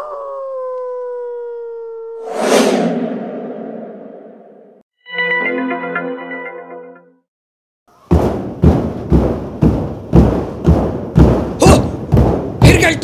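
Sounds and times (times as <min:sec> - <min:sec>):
noisy whoosh: 0:02.2 - 0:04.8.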